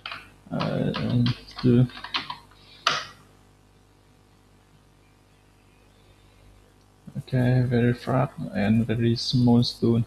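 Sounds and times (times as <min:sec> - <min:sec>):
computer keyboard keystrokes: 0:00.0 - 0:03.1.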